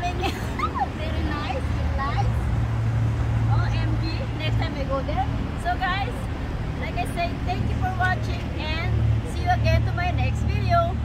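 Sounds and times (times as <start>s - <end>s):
woman talking: 0.0s - 2.4s, 3.5s - 11.0s
steady low rumble: 0.0s - 11.0s.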